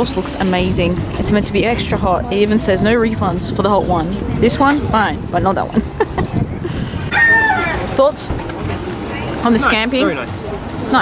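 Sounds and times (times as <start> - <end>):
rooster crowing: 7.1 - 8.0.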